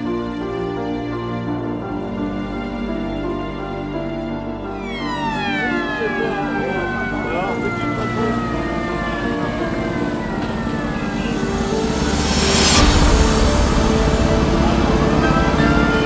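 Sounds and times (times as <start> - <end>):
siren winding down: 4.8 - 13.2
street parade noise: 5.0 - 16.0
loud burst of noise: 5.4 - 16.0.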